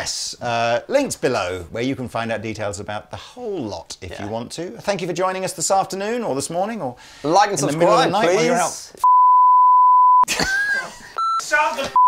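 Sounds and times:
man's voice: 0.0 - 9.0
censor bleep: 9.0 - 10.3, 11.2 - 12.0.

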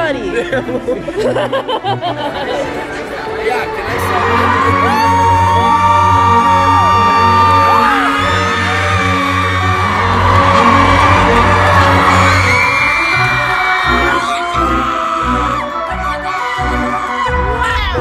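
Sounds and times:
crowd screaming and whooping: 3.9 - 15.9
loud music with heavy bass: 5.5 - 14.9.

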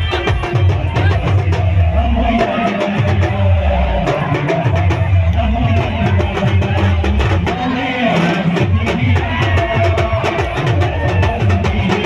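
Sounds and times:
fast drum beat: 0.0 - 12.0.

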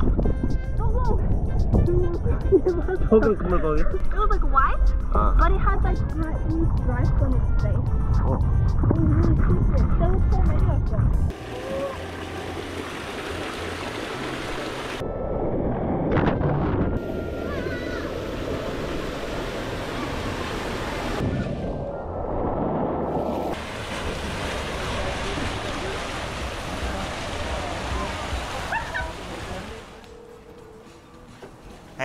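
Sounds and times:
water rushing down slide: 11.3 - 15.0, 17.0 - 30.1.

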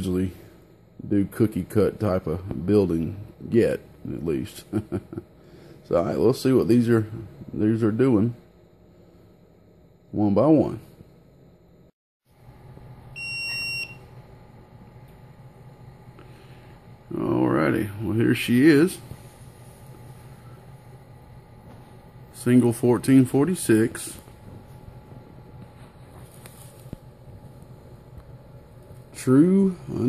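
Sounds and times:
continuous low hum: 0.0 - 30.0.

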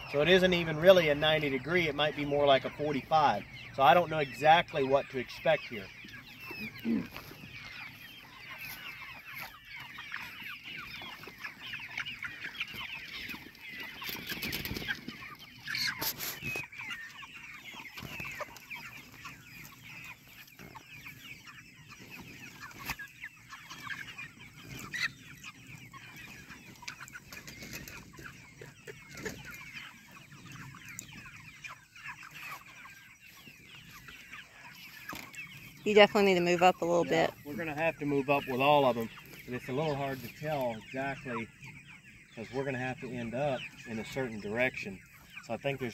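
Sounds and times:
chickens calling: 0.0 - 45.9.

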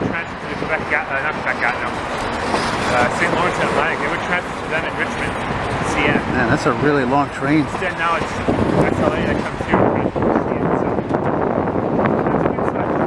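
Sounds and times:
freight train rolling past: 0.0 - 13.0
indistinct voices talking: 0.0 - 13.0.

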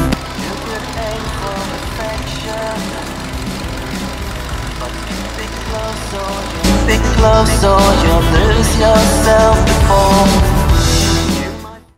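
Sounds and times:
car engine idling: 0.0 - 11.5
background music: 0.0 - 11.9.

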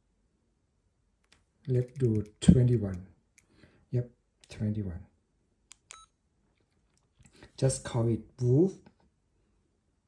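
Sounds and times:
keypad key presses: 1.7 - 3.0.

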